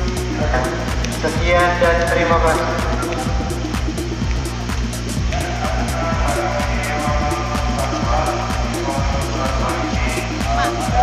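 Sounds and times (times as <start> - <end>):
background music with fast beat: 0.0 - 11.0.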